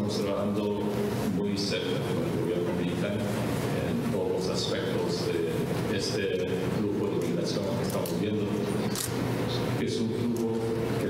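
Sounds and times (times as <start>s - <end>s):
man speaking into a microphone: 0.0s - 8.8s, 9.7s - 11.0s.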